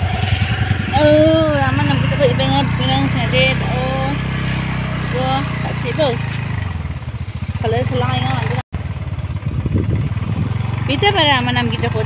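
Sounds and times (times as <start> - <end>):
motorbike engine rumble: 0.0 - 12.0
person talking: 0.8 - 4.2, 5.1 - 6.2, 7.6 - 8.6, 10.9 - 12.0.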